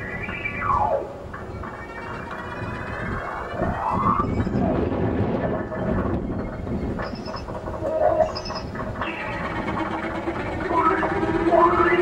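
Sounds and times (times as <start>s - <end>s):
dense low noisy texture: 0.0s - 12.0s.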